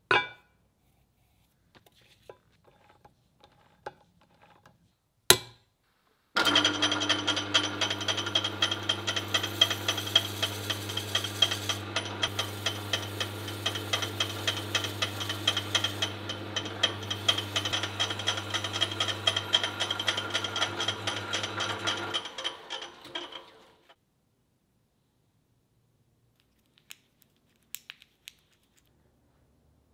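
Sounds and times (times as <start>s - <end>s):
drill press motor humming: 6.4s - 24.0s.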